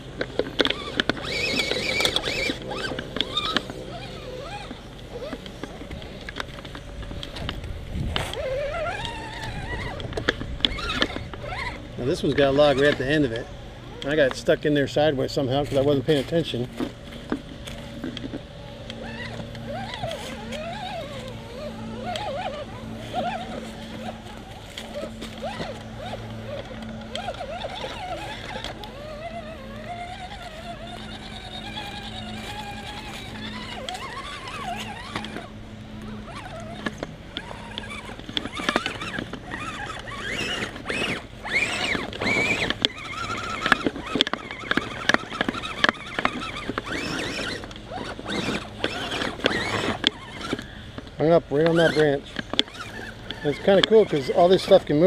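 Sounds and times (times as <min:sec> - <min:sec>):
electric motor whining: 0:00.0 - 0:55.0.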